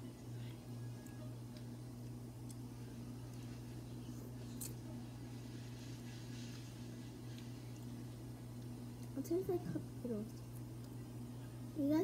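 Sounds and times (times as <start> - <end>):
low appliance hum: 0.0 - 12.0.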